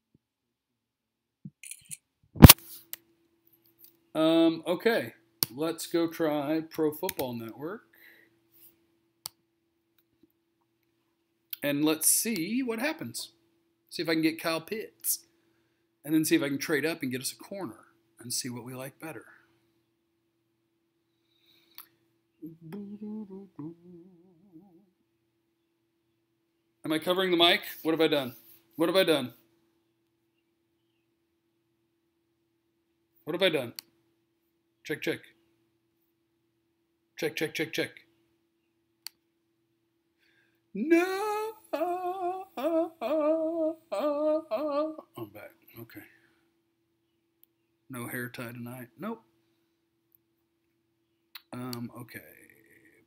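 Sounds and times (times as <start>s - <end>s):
faint steady hum: 2.4s - 53.0s
man humming: 22.4s - 25.0s, 40.8s - 45.4s.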